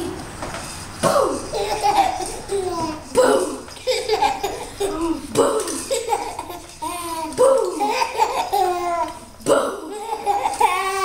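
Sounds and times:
baby laughing: 1.4s - 9.2s, 9.8s - 11.0s.

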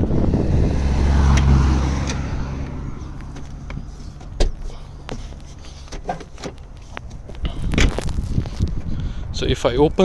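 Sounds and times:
low rumble: 0.0s - 5.8s.

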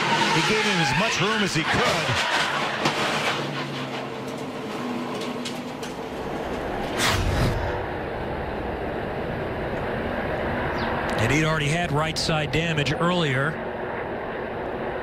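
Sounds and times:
loud rushing burst: 7.0s - 7.9s.

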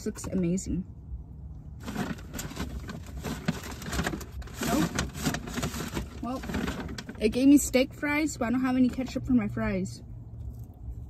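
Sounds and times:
paper bag crinkling: 1.8s - 7.6s.

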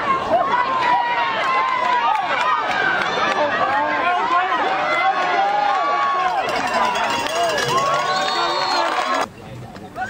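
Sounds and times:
crowd yelling and cheering: 0.0s - 9.3s.

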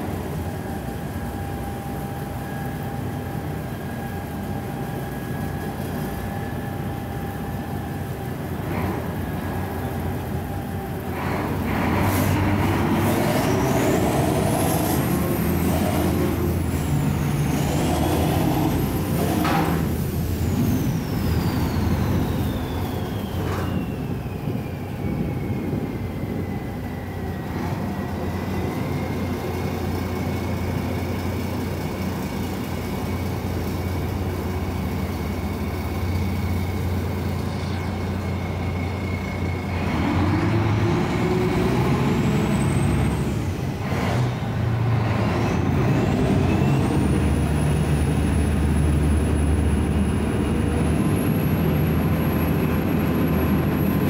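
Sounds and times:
high engine whine: 0.0s - 54.0s
ship diesel engines droning: 0.0s - 54.0s.

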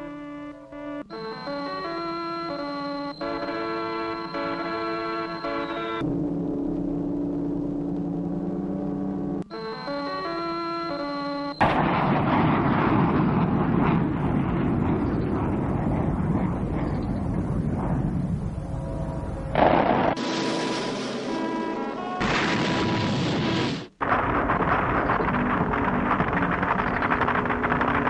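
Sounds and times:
explosion sound effect: 11.6s - 18.7s, 19.5s - 28.0s
held orchestral chords: 20.3s - 22.4s.

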